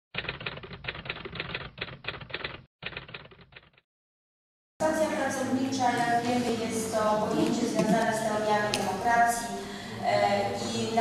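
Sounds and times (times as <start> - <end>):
typewriter keystrokes clattering: 0.2 - 3.8.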